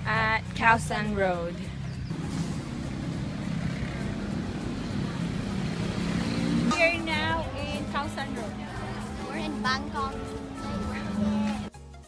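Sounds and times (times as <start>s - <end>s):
low rumble of street traffic: 0.0s - 11.7s.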